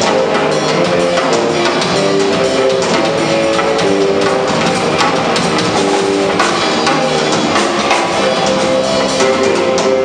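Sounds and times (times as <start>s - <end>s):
drum strikes: 0.0s - 10.0s
live band playing: 0.0s - 10.0s.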